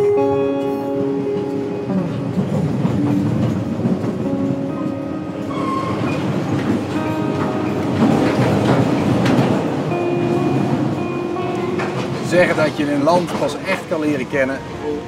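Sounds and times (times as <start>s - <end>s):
faint music: 0.0s - 15.0s
train rumbling on rails: 0.0s - 15.0s
wheels clattering over track: 1.0s - 14.6s.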